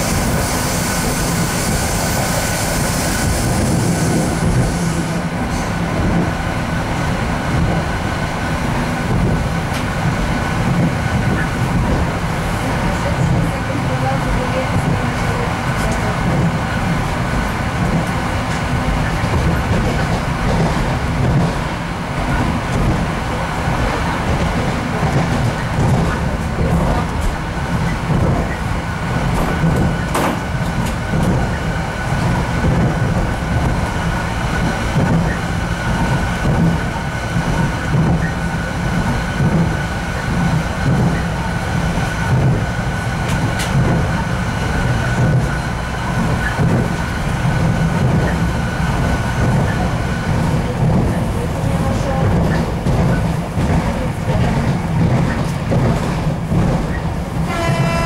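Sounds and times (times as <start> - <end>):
train engine and wheels rumbling: 0.0 - 58.0.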